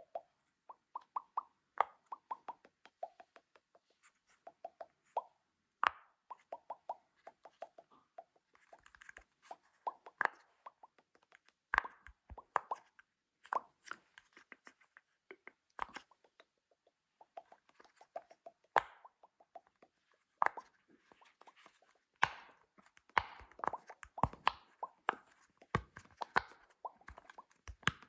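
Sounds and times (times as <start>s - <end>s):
pop-it toy bubbles popping: 0.0s - 13.9s, 15.3s - 28.0s.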